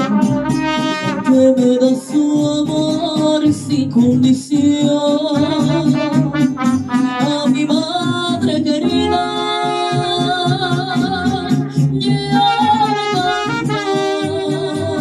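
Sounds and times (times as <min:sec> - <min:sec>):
trumpets: 0:00.0 - 0:01.7, 0:05.4 - 0:07.6, 0:12.5 - 0:15.0
small guitars: 0:00.0 - 0:15.0
woman singing into a microphone: 0:00.0 - 0:15.0.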